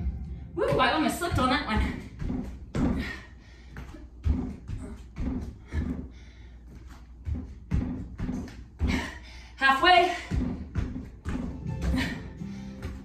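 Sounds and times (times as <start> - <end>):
sneakers thudding on yoga mat: 0.6 - 9.2, 9.8 - 12.2.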